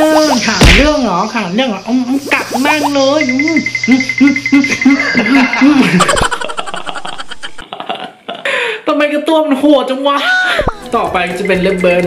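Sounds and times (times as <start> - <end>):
man laughing hard: 4.2 - 8.5.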